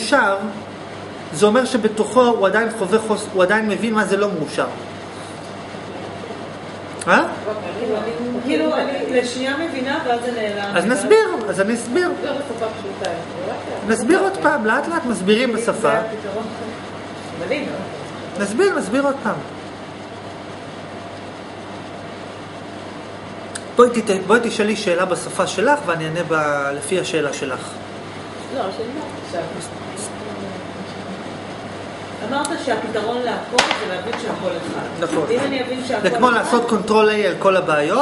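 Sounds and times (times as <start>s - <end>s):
low constant hum: 0.0s - 38.0s.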